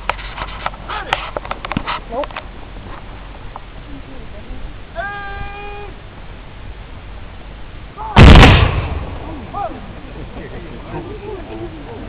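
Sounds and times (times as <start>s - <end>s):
person shouting a command: 5.0s - 6.0s
musket volley: 8.1s - 9.8s.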